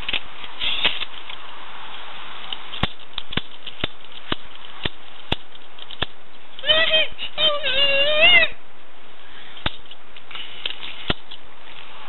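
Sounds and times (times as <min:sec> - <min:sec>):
child's high-pitched voice: 0:06.6 - 0:08.6.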